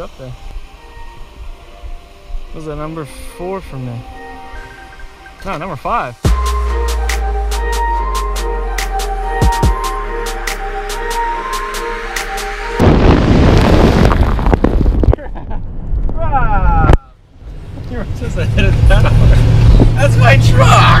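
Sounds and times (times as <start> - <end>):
outro music: 0.4 - 14.0
wind rushing through car window: 12.8 - 21.0
voices: 16.2 - 21.0
low engine hum: 17.2 - 21.0.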